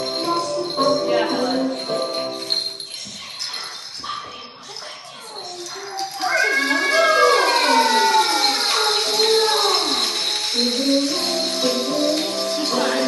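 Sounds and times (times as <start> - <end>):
loud cries sliding down in pitch: 6.1 - 10.4.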